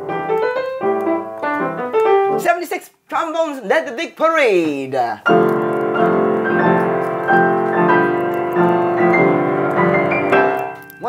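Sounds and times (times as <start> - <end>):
piano chords: 0.0 - 2.5, 5.3 - 11.0.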